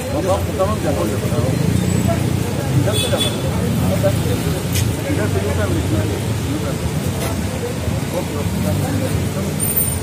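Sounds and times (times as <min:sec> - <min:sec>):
people talking indistinctly: 0:00.0 - 0:10.0
road traffic rumble: 0:00.0 - 0:10.0.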